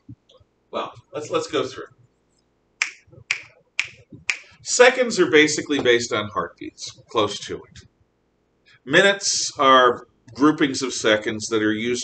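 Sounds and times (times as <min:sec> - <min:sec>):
finger snapping: 0:02.8 - 0:04.5.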